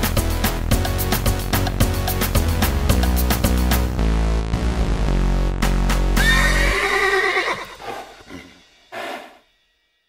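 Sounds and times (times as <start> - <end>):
song with deep bass line: 0.0 - 6.2
horse whinnying: 6.2 - 9.3.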